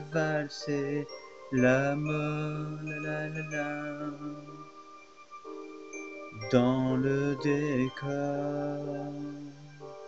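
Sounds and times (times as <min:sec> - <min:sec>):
man singing pop song: 0:00.0 - 0:04.7, 0:06.4 - 0:09.8.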